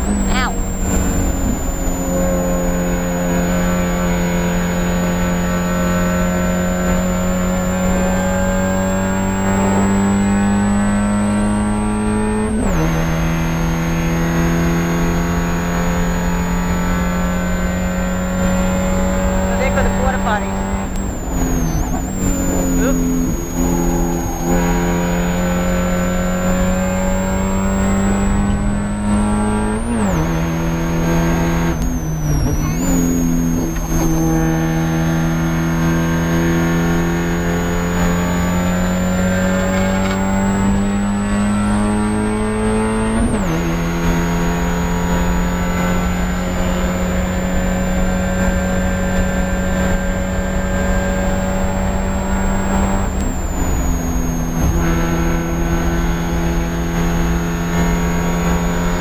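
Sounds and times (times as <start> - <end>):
car engine at high revs: 0.0 - 59.0.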